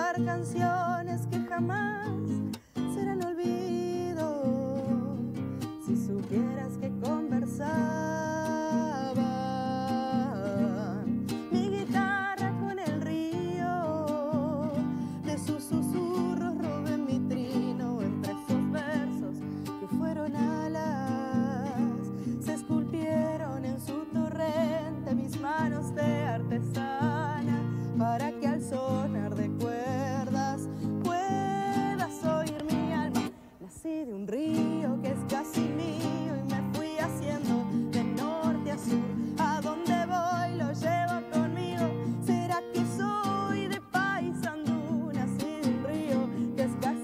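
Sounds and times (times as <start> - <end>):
strummed nylon-string guitar: 0.0 - 47.0
woman singing folk song: 0.0 - 47.0.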